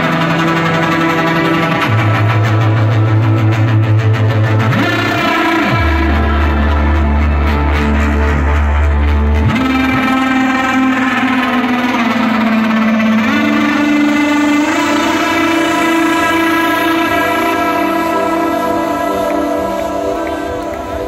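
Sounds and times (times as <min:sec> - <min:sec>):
heavy kick and bass: 0:00.0 - 0:21.0
melodic techno over sound system: 0:00.0 - 0:21.0
sustained synth chords: 0:00.0 - 0:21.0.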